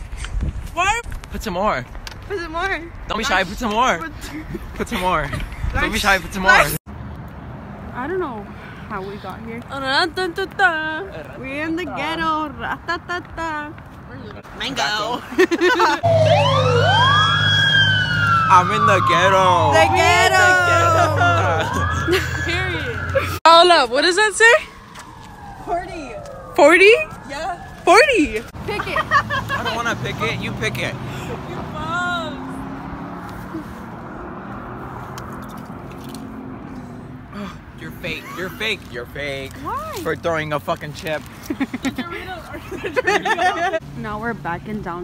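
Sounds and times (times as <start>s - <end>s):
car passing: 1.4s - 45.0s
low truck rumble: 15.3s - 26.5s
fire engine siren wailing: 16.0s - 28.6s.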